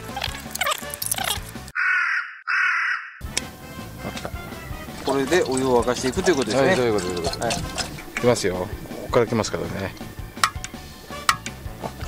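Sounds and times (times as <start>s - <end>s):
background music: 0.0s - 1.7s, 3.2s - 12.0s
crow cawing: 1.8s - 3.2s.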